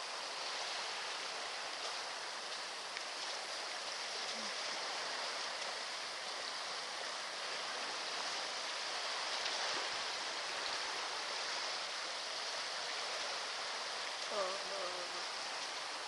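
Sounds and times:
sea surf washing on shore: 0.0 - 16.0.

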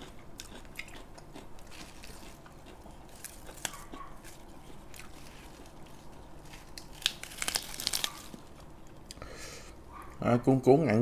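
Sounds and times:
lettuce leaf crinkling: 1.6 - 8.6.

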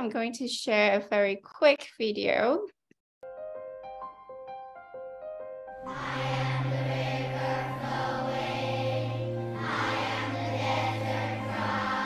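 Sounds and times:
voices singing slow song: 5.8 - 12.0.

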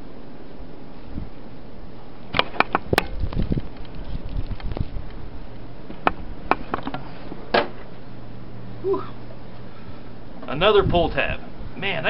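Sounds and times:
wind-like rush: 0.0 - 12.0
sharp clicks and knocks: 2.3 - 5.2, 5.9 - 7.8.

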